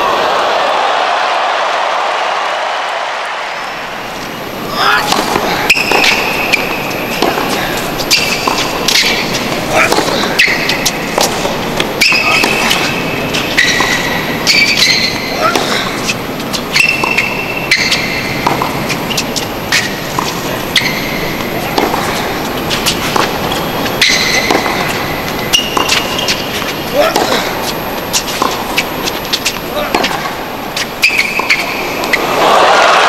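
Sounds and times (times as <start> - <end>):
crowd chatter: 0.0 - 14.5, 17.6 - 33.0
sneaker squeaks: 3.6 - 32.4
tennis balls struck with rackets: 4.9 - 32.3.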